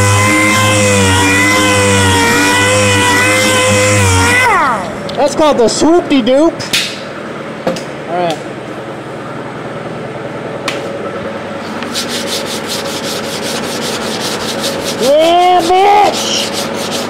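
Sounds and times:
sanding block rubbing filler: 11.9s - 17.0s.

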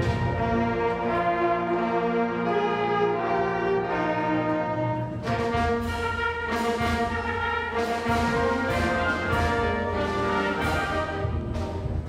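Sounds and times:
brass and woodwind chords: 0.0s - 12.0s.

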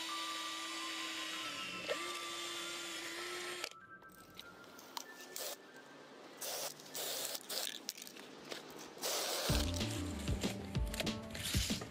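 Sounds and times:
electric drill drilling steel: 0.0s - 3.7s.

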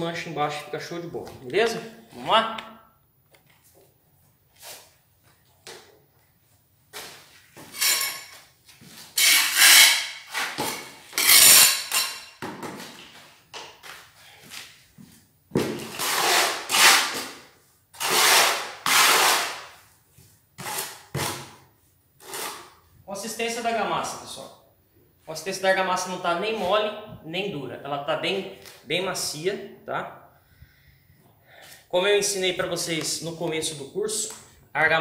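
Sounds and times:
rough scraping strokes: 22.2s - 22.8s.

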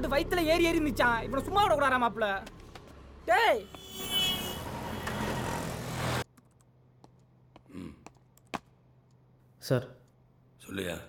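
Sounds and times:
street traffic noise: 2.0s - 7.7s.

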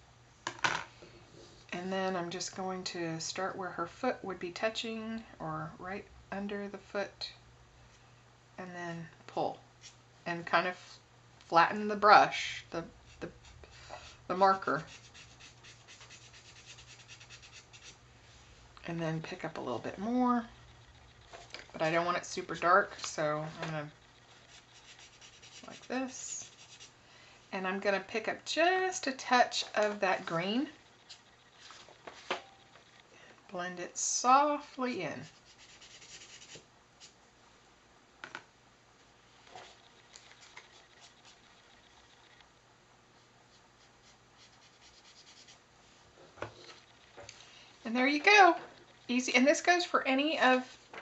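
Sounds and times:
marker scratching on paper: 13.1s - 18.0s, 20.5s - 26.9s, 35.1s - 37.2s, 39.6s - 42.3s, 43.8s - 45.6s.

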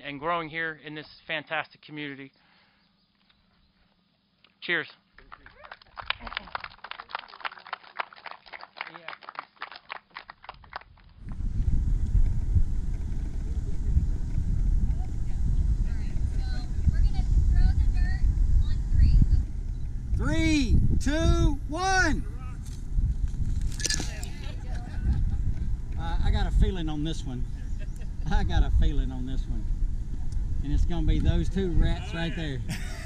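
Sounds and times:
small crowd clapping: 5.1s - 11.2s
wind rumbling on microphone: 10.4s - 32.8s.

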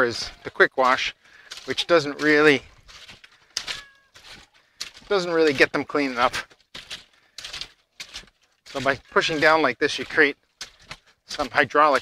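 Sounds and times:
water and clothes sloshing: 0.0s - 12.0s.

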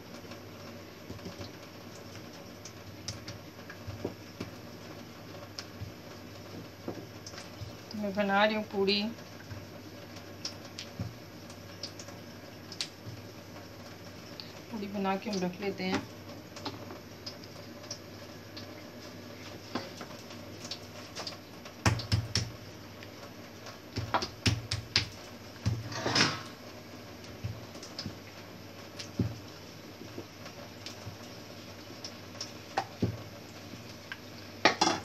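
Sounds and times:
utensils clattering against a plate: 25.9s - 26.5s.

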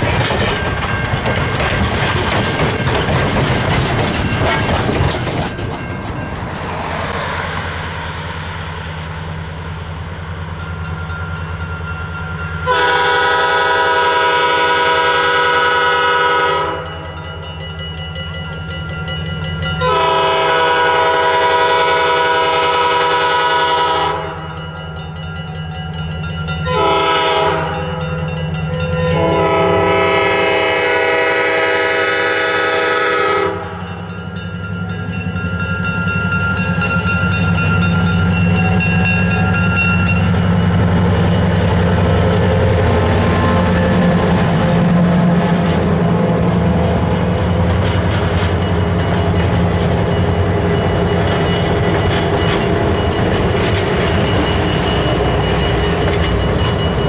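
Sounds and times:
crossing bell ringing: 0.0s - 7.0s, 10.3s - 57.0s
locomotive air horn: 12.6s - 17.0s, 19.8s - 24.4s, 26.7s - 28.0s, 29.0s - 33.8s, 42.5s - 45.7s.

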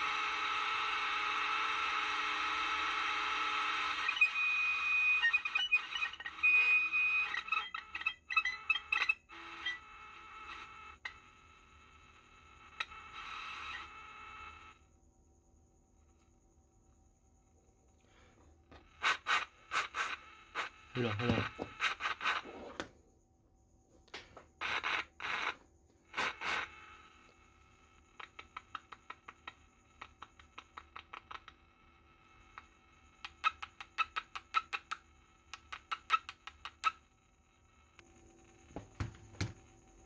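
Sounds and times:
faint steady whine: 0.0s - 40.0s.

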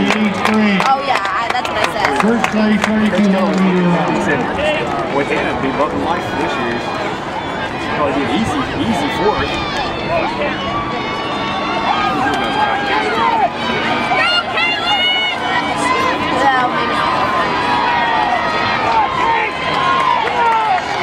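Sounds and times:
crowd shouting: 0.0s - 21.0s.

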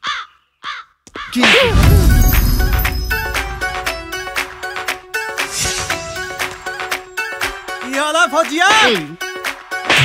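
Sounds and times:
deep boom: 1.6s - 4.6s
soundtrack music: 1.7s - 10.0s.

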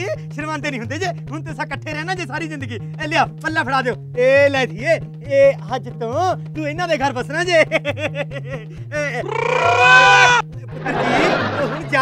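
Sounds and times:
background music with bass line: 0.0s - 12.0s
loud wavering cry: 9.2s - 10.4s
rough cry: 9.2s - 11.5s.

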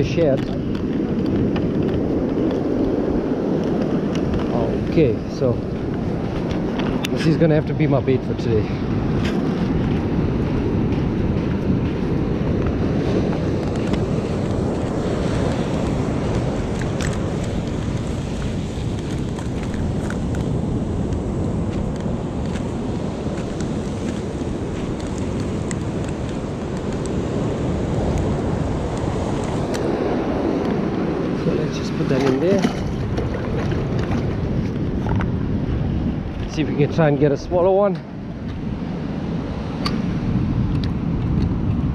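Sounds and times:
ocean surf: 0.0s - 41.9s
wind buffeting microphone: 0.0s - 41.9s.

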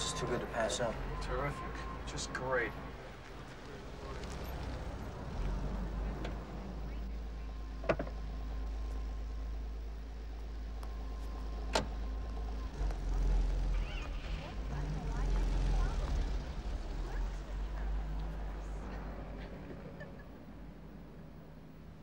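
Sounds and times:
low steady rumble: 4.8s - 22.0s
car door shutting: 7.8s - 8.2s, 11.6s - 12.0s.

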